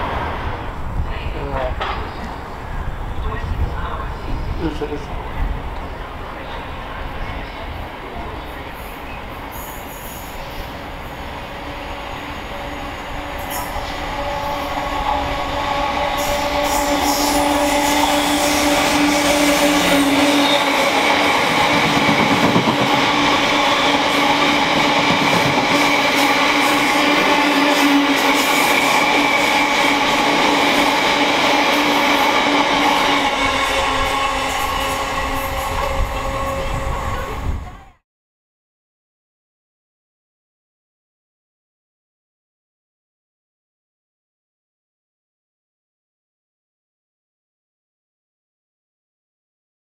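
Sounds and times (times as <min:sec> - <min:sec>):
diesel locomotive engine: 0:00.0 - 0:38.0
wheels squealing: 0:11.9 - 0:37.3.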